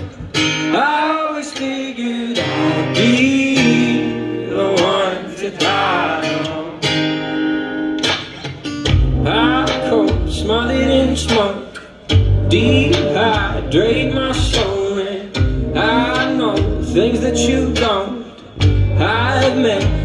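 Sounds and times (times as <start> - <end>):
acoustic guitar strumming: 0.0 - 20.0
man singing: 0.5 - 7.3, 9.0 - 20.0.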